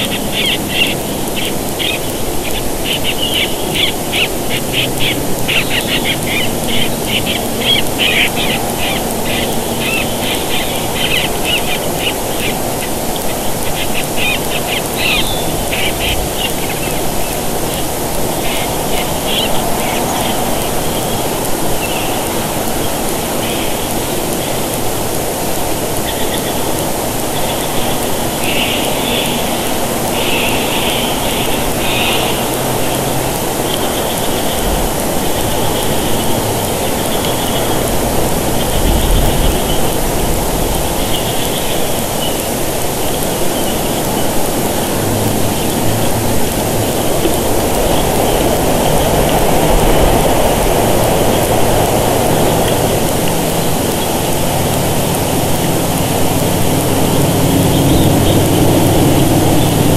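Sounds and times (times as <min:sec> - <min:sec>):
bird chirps and trills: 0:00.0 - 0:59.9
microphone hiss: 0:00.0 - 0:59.9.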